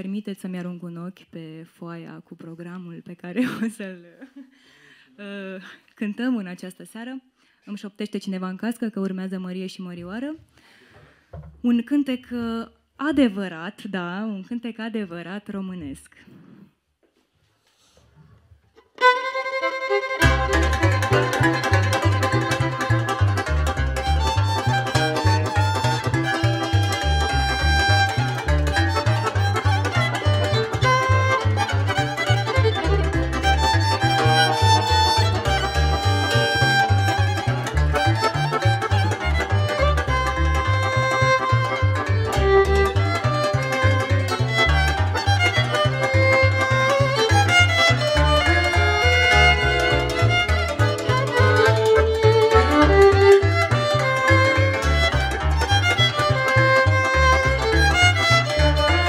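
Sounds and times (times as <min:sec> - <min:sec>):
violin playing: 0:18.8 - 0:59.0
plucked double bass: 0:19.0 - 0:59.0.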